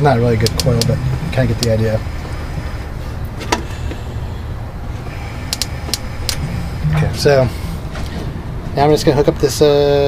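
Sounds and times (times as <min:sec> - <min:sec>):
steady low hum: 0:00.0 - 0:10.0
sparks snapping: 0:00.4 - 0:01.0, 0:05.5 - 0:06.4.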